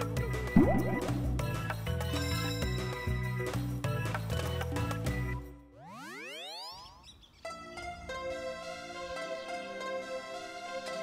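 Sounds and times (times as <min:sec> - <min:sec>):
background music: 0:00.0 - 0:05.7
cartoon rising tone: 0:00.6 - 0:01.8.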